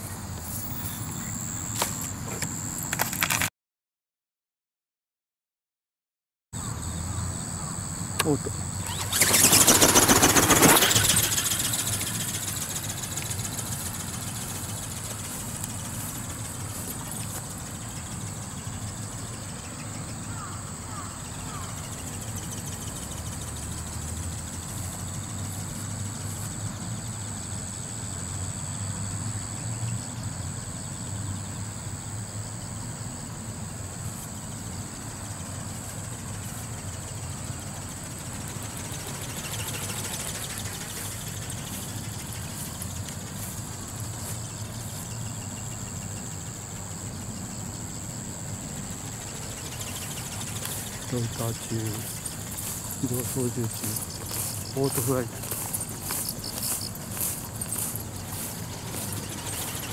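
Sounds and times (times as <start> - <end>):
flying toy motor whine: 0.0 - 3.5, 6.6 - 59.9.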